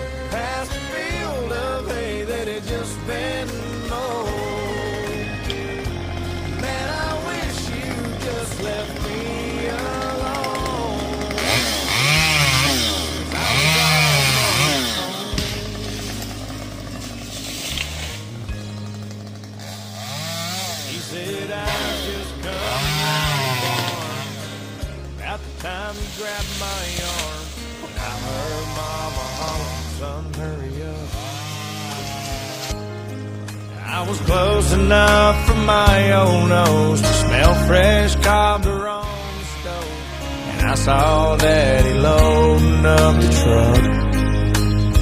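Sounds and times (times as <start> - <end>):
chainsaw revving: 0.0 - 45.0
instrumental country music: 0.0 - 45.0.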